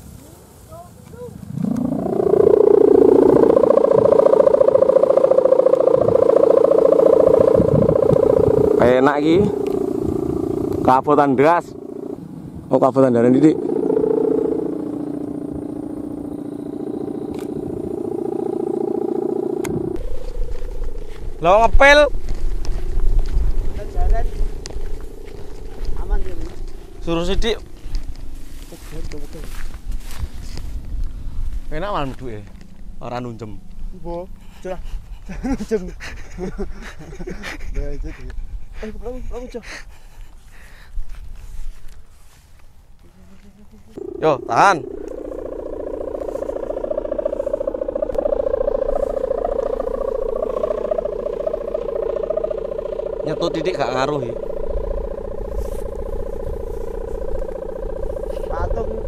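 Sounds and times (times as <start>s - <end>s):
wind buffeting microphone: 0.0s - 42.1s, 44.0s - 59.0s
kite hummer droning: 0.0s - 59.0s.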